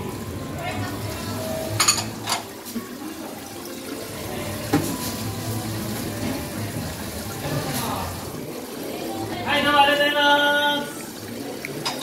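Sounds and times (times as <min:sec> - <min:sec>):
running water rushing: 0:00.0 - 0:12.0.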